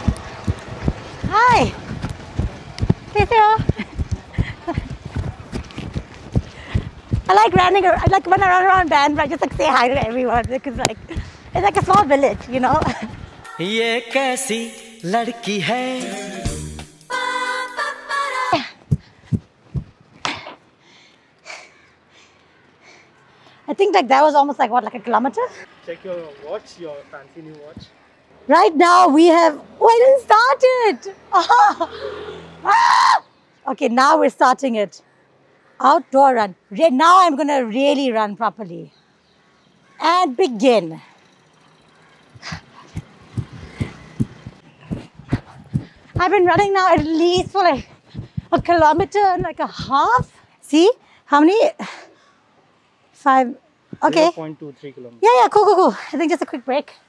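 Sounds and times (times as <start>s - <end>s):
low thumps: 0.0s - 13.4s, 18.8s - 20.0s, 42.4s - 50.4s
runner breathing heavily: 0.0s - 13.4s, 18.6s - 23.3s, 42.3s - 51.2s.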